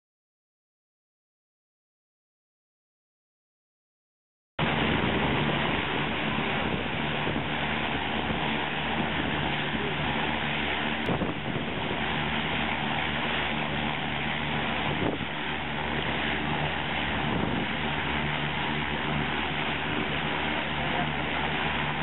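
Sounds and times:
propeller engine droning: 4.6s - 22.0s
wind hiss on microphone: 10.8s - 13.9s, 14.5s - 18.4s.

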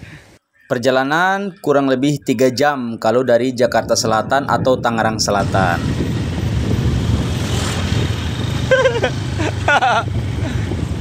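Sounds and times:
road and wind noise: 3.1s - 11.0s
vehicle engine rumbling: 4.0s - 11.0s.

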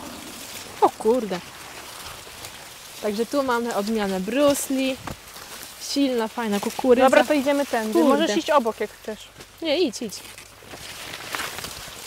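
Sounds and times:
corn leaves rustling: 0.0s - 12.0s.

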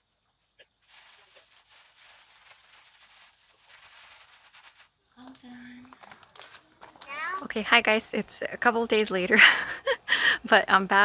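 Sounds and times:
hands packing dry soil: 0.6s - 5.0s.

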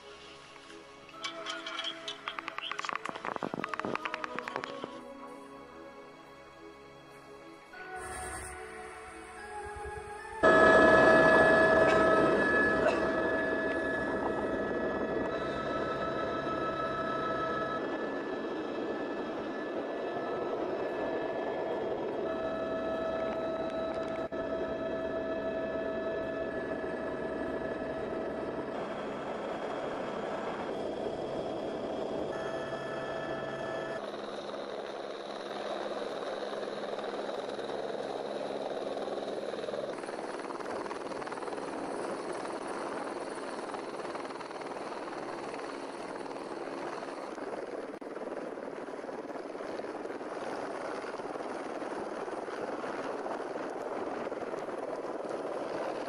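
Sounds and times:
helicopter turbine whine and rotor: 0.0s - 56.0s.

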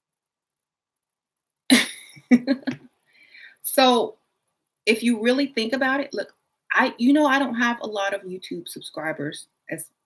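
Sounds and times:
woman coughing: 1.7s - 2.8s.

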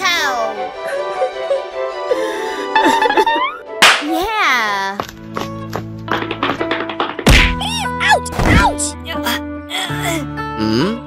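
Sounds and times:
background music: 0.0s - 11.0s
loud cartoon thud: 6.4s - 7.7s, 8.3s - 8.8s.

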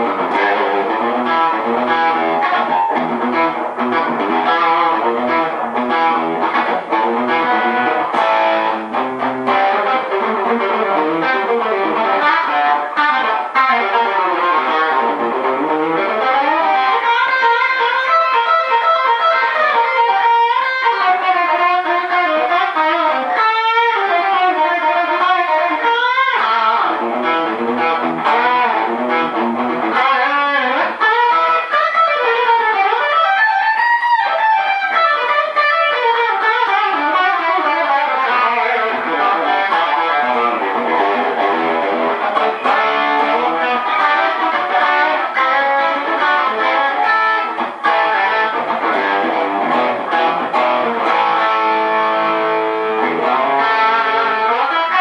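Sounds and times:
overdriven electric guitar lead: 0.0s - 55.0s.

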